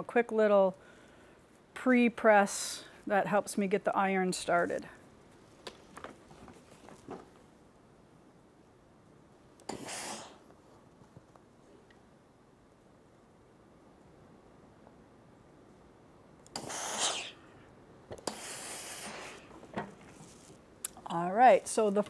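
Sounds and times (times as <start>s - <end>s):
steam iron hissing: 16.6s - 17.4s, 18.3s - 19.5s.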